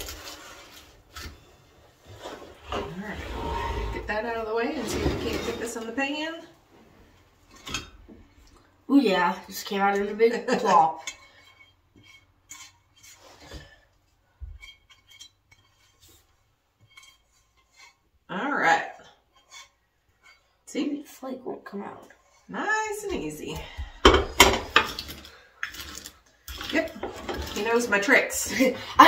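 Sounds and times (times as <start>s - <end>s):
spatula scraping skillet: 0.0s - 6.2s, 9.6s - 29.0s
utensils clacking against dishes: 24.0s - 29.0s.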